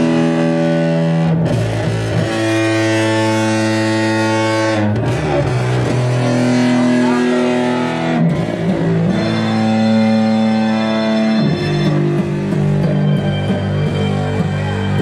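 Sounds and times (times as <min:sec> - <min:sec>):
distorted electric guitar: 0:00.0 - 0:15.0
live band playing slow chords: 0:00.0 - 0:15.0.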